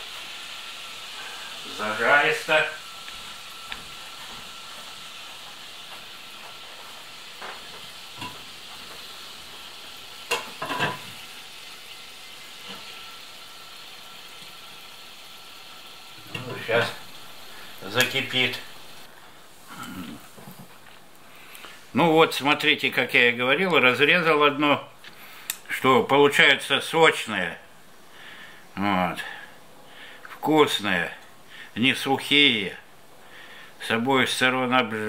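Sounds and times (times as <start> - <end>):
frying pan sizzling: 0.0 - 27.3.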